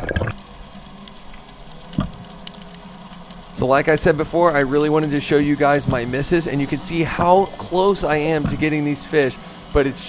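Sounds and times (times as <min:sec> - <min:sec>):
underwater water wash: 0:00.0 - 0:10.0
faint ticks: 0:00.4 - 0:03.9.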